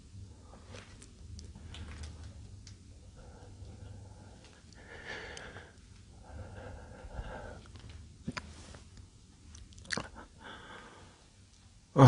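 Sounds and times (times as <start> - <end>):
soft breath: 3.0 - 8.9, 10.2 - 11.4.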